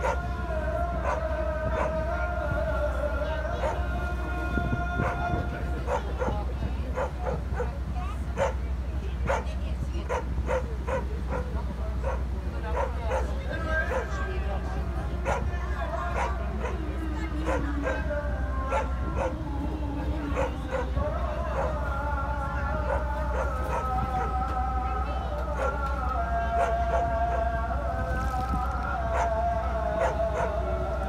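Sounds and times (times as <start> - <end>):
longer held calls or voices: 0.0 - 31.0
steady low hum: 0.0 - 31.0.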